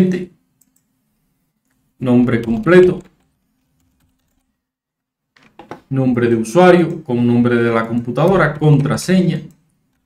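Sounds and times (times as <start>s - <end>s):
typing on computer keyboard: 2.4s - 4.5s.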